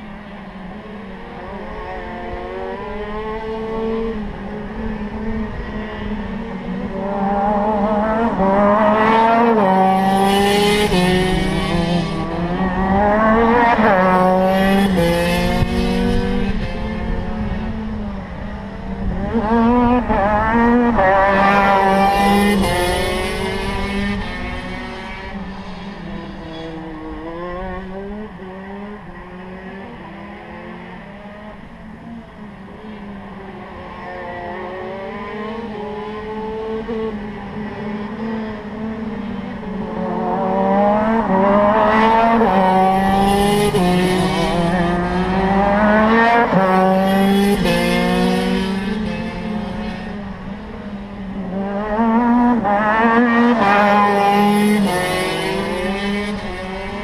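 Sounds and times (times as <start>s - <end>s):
kart engine accelerating through gears: 0.0s - 57.0s.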